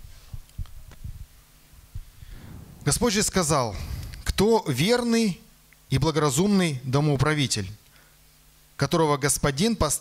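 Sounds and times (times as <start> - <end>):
microphone handling thumps: 2.0 - 4.6.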